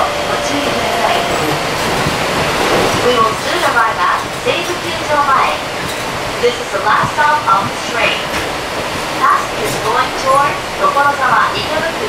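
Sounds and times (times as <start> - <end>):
train running noise: 0.0 - 12.0.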